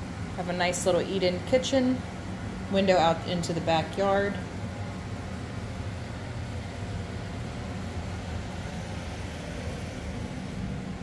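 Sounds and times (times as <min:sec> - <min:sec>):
air conditioning hum: 0:00.0 - 0:11.0.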